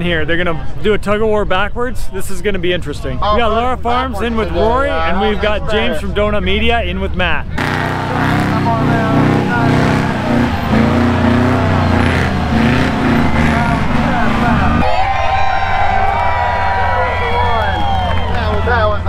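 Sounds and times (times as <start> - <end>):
off-road vehicle engines running: 0.0 - 19.0
people's voices: 0.0 - 19.0.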